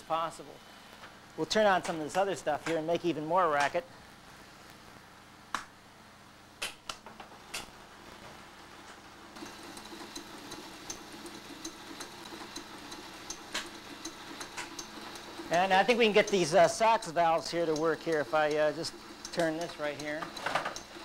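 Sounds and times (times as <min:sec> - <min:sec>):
faint rapid ticking: 0:09.4 - 0:21.0
steady mechanical whir: 0:09.4 - 0:21.0.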